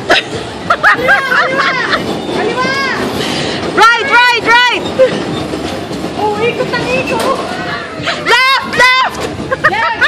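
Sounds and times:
bumper cars rolling rumble: 0.0s - 10.0s.

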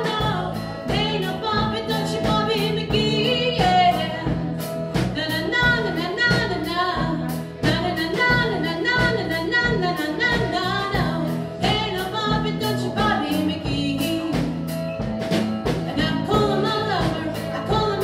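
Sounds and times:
woman singing: 0.0s - 14.8s, 15.7s - 18.0s
bass guitar: 0.0s - 18.0s
guitar: 0.0s - 18.0s
drum kit hits: 14.3s - 17.5s.

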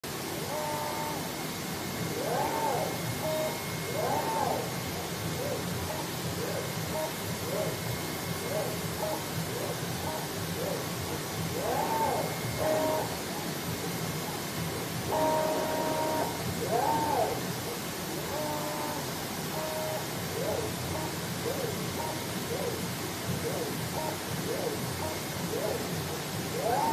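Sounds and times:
machine drive motors whining: 0.1s - 26.9s.

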